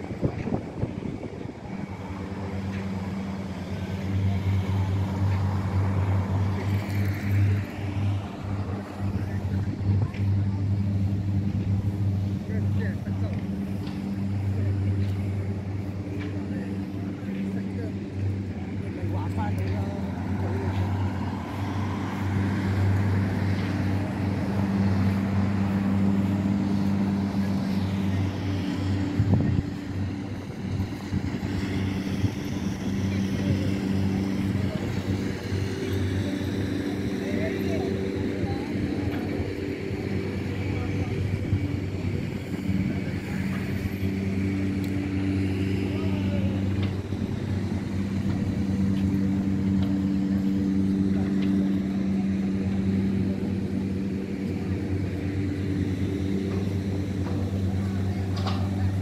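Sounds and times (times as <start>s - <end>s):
low engine hum: 0.0s - 59.0s
street noise: 0.0s - 59.0s
voices: 0.0s - 59.0s.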